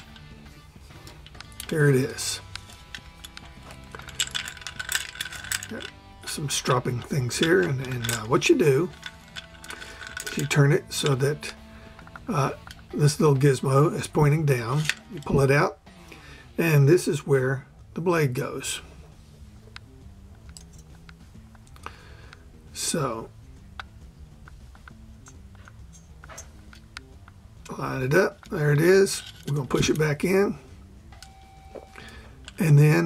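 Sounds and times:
small metallic clicks and rattles: 0:00.0 - 0:15.5, 0:19.7 - 0:22.4, 0:23.6 - 0:30.5, 0:32.0 - 0:33.0
background music: 0:00.0 - 0:33.0.

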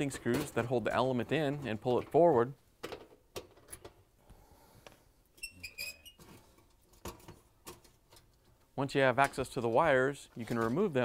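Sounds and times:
high-pitched squeak: 0:05.4 - 0:06.2.

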